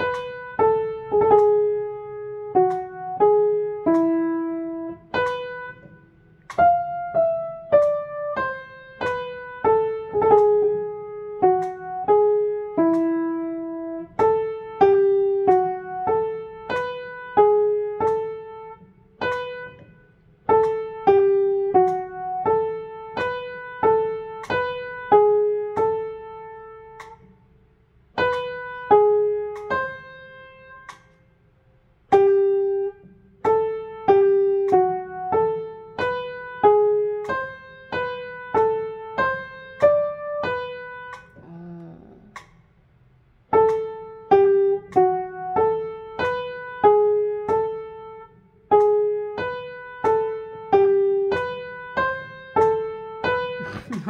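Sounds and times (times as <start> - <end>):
upright piano melody: 0.0 - 27.2, 28.1 - 31.1, 32.1 - 41.4, 43.5 - 54.0.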